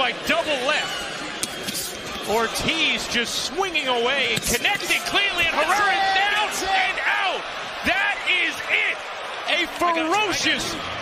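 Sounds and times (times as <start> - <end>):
man exclaiming excitedly: 5.0 - 9.0.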